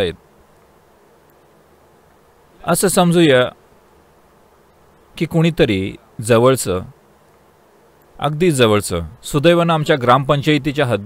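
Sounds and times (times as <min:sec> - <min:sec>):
man speaking: 0:00.0 - 0:00.2, 0:02.6 - 0:03.6, 0:05.2 - 0:07.0, 0:08.2 - 0:11.0
faint background noise: 0:00.0 - 0:11.0.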